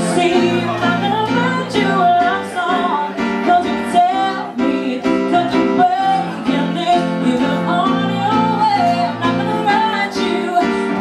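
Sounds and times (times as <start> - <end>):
piano repeated chords: 0.0 - 11.0
woman singing pop song: 0.0 - 11.0.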